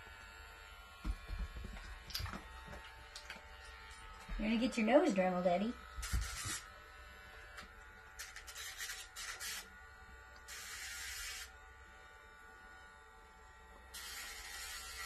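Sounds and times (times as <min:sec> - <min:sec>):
rotary tool whining: 0:03.4 - 0:11.6
grinding rasps on toenail: 0:06.0 - 0:09.7.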